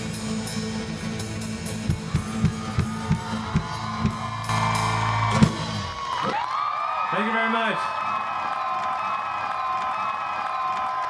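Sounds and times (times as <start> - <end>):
crowd cheering: 1.6 - 11.0.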